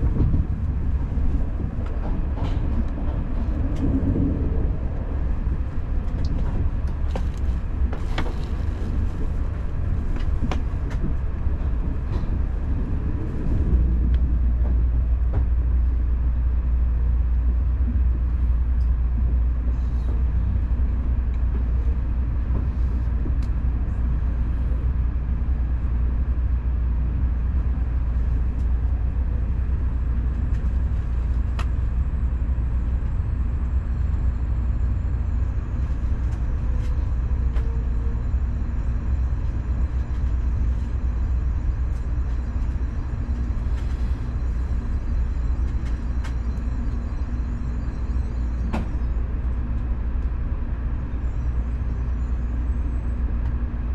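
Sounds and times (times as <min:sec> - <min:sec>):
train rumbling on track: 0:00.0 - 0:53.9.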